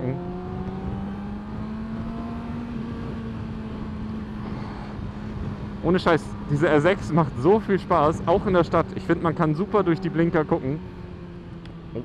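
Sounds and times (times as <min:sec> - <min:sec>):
low road rumble: 0:00.0 - 0:12.0
motorcycle engine running: 0:00.0 - 0:12.0.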